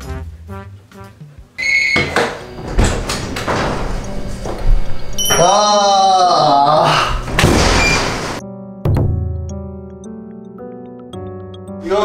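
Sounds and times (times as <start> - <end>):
comic jazz music with brass: 0.0 - 1.6
knocks and thuds: 7.3 - 9.3.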